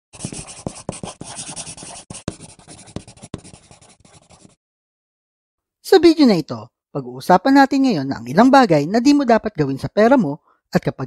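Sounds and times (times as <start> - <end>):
marker taps: 0.2 - 4.5
marker scratching on whiteboard: 0.2 - 4.6.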